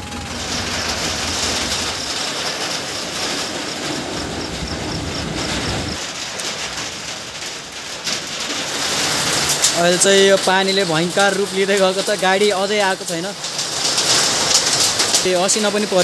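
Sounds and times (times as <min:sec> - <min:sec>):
low rumble: 0:00.0 - 0:06.0
vehicle engine and road hiss: 0:00.0 - 0:06.1.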